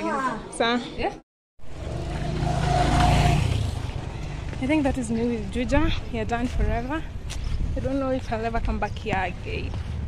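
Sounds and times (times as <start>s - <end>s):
low rumble of street noise: 1.6s - 10.0s.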